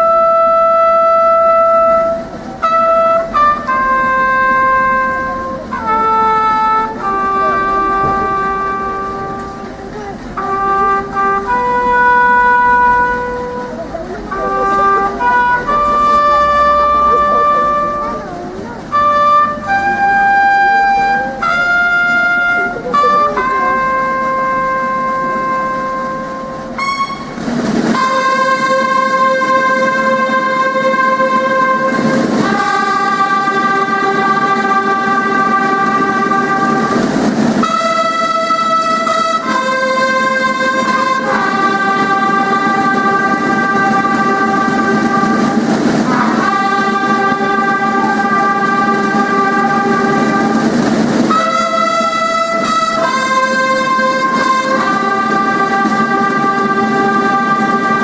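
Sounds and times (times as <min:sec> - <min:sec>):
brass band playing slow chords: 0:00.0 - 0:58.0
drums or cymbals swell: 0:22.6 - 0:58.0.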